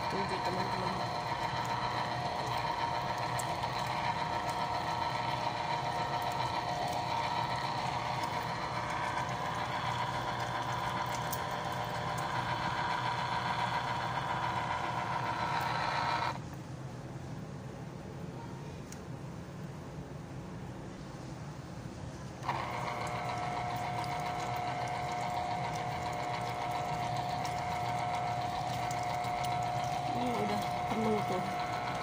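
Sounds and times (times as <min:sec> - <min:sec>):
electric juicer motor whining: 0:00.0 - 0:16.4, 0:22.4 - 0:32.0.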